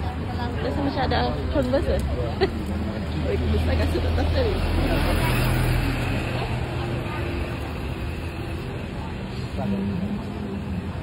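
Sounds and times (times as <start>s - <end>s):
chatter of passers-by: 0.0s - 11.0s
road traffic passing: 0.0s - 11.0s.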